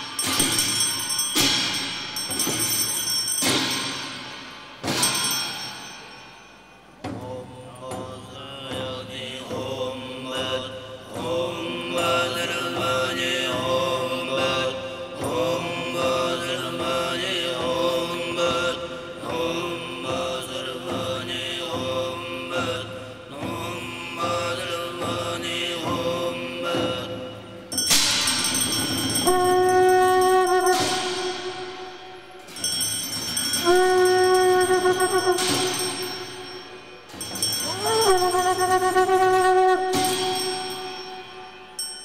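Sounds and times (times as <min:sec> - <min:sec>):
throat singing drone: 0:07.2 - 0:27.5, 0:29.0 - 0:32.8, 0:33.4 - 0:41.8.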